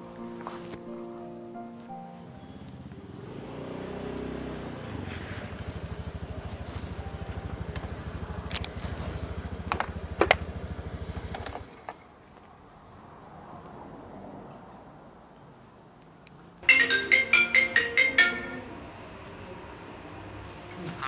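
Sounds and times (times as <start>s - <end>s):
motor scooter engine idling: 2.4s - 12.1s.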